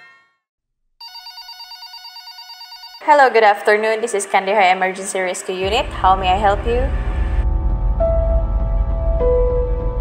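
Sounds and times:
telephone ringing electronic warble: 0:01.0 - 0:03.1.

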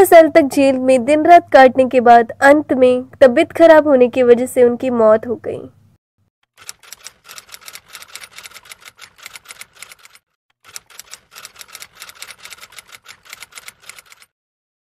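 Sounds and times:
typewriter keys clicking: 0:06.6 - 0:14.3.

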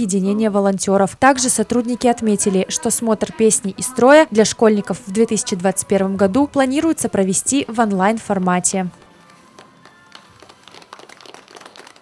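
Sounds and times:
audience applauding: 0:09.6 - 0:12.0.

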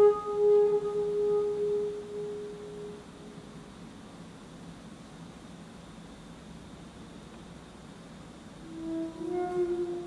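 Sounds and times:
alto saxophone long note: 0:00.0 - 0:03.4, 0:08.6 - 0:10.0.

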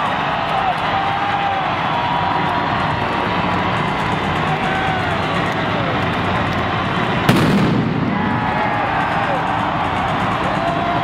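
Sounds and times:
arena crowd noise: 0:00.0 - 0:11.0
low rumble: 0:05.3 - 0:10.4
pyrotechnic blast: 0:07.3 - 0:09.1.

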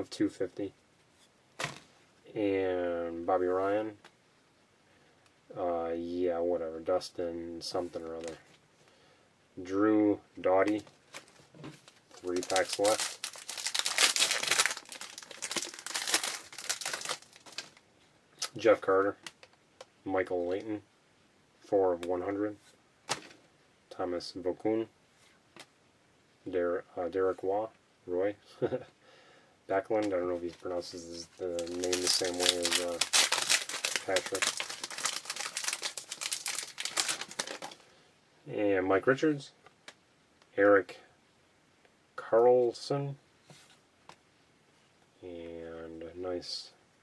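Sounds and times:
foil wrapper tearing and crinkling: 0:12.1 - 0:17.8, 0:31.4 - 0:37.8.

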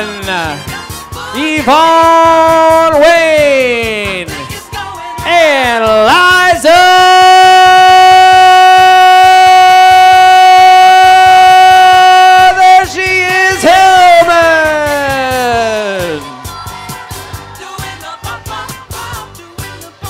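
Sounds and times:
person singing over loudspeaker: 0:00.0 - 0:20.0.

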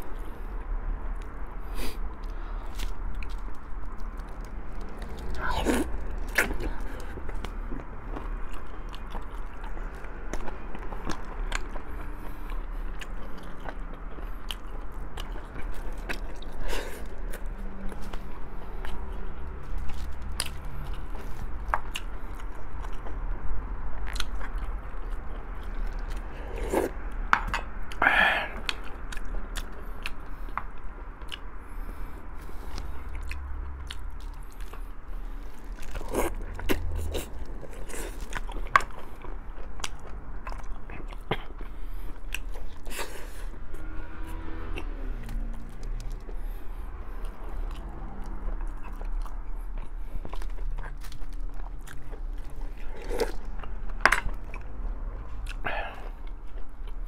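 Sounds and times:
man chewing meat off bones: 0:00.0 - 0:57.0.

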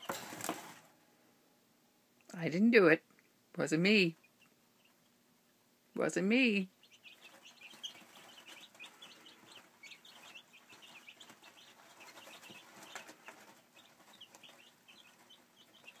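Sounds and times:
chicks peeping: 0:04.0 - 0:05.2, 0:06.3 - 0:16.0.

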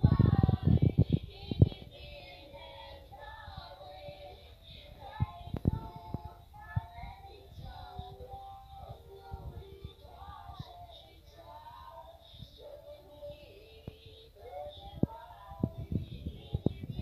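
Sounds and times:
children singing a carol: 0:00.0 - 0:16.6.

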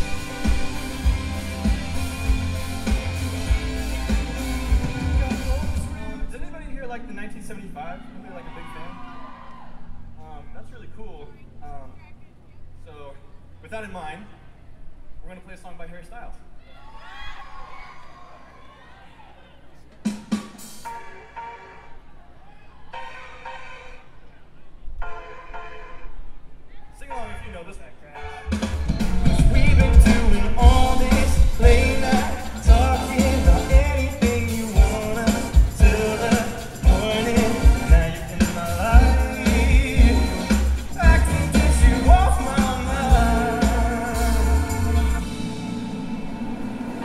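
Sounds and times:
rock band playing loudly: 0:00.0 - 0:06.0, 0:28.4 - 0:47.0
sustained chords: 0:00.0 - 0:08.4, 0:28.4 - 0:47.0.

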